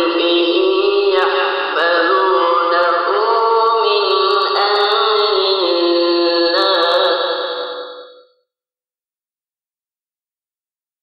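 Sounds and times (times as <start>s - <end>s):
person chanting: 0.0s - 8.2s.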